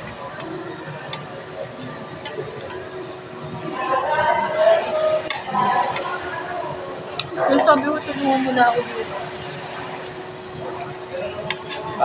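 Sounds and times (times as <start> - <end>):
faint voices: 0.0 - 12.0
restaurant background hiss and hum: 0.0 - 12.0.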